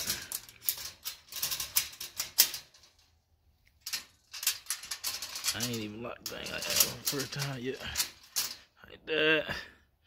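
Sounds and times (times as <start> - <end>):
metal grid door moving: 0.0 - 3.1, 3.8 - 8.6.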